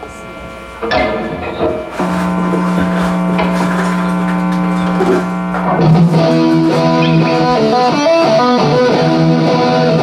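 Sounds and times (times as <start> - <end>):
electric guitar sustained note: 0.0 - 10.0
band playing: 1.0 - 10.0.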